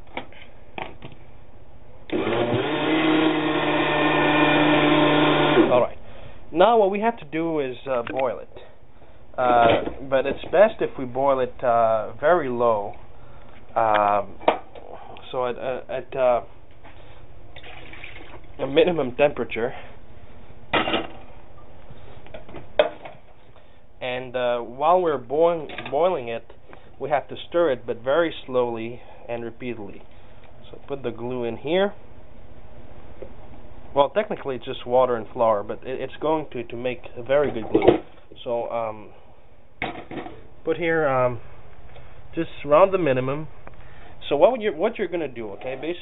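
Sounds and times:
electric blender running: 2.1s - 5.8s
faint steady hiss: 5.6s - 46.0s.

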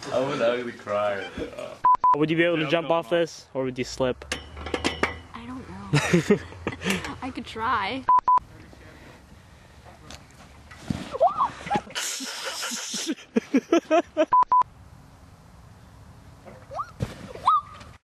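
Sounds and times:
censor bleep tone: 1.8s - 2.2s, 8.1s - 8.4s, 14.4s - 14.6s.

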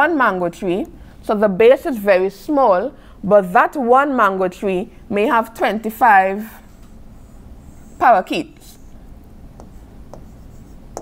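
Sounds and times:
low steady hum: 0.0s - 11.0s
stylus tapping tablet screen: 9.5s - 11.0s.

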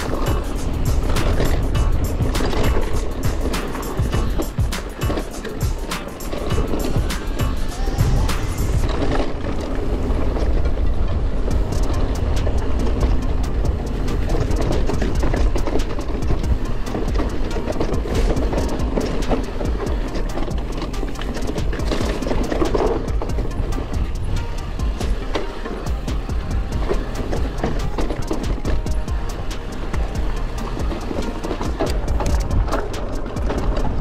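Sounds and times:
background music: 0.0s - 34.0s
bike rattling over stones: 0.0s - 34.0s
wind rush on microphone: 0.0s - 34.0s.

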